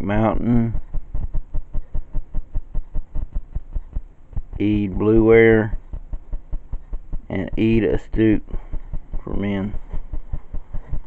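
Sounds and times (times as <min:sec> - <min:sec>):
fast rhythmic pulsing thump: 0:00.0 - 0:11.0.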